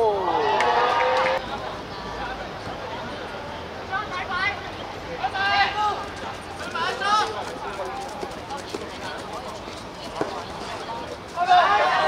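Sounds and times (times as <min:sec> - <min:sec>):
people shouting: 0:11.4 - 0:12.0.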